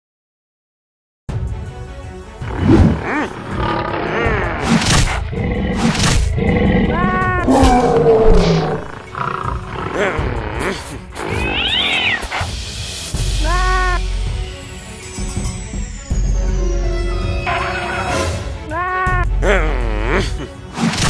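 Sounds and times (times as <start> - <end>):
background music: 1.3 - 21.0
cartoon lion roaring and growling: 2.4 - 11.9.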